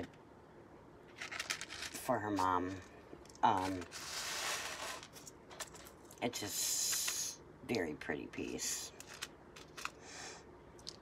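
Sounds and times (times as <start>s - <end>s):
plastic wrapping rustling: 1.1s - 2.8s, 3.4s - 6.2s.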